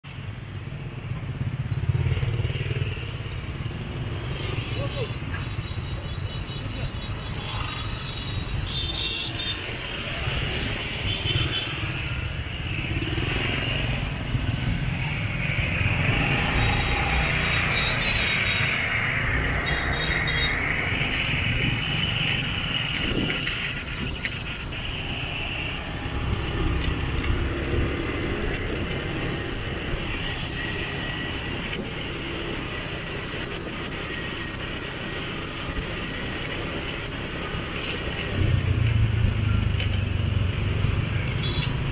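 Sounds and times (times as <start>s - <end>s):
motorbike traffic passing: 0.1s - 41.9s.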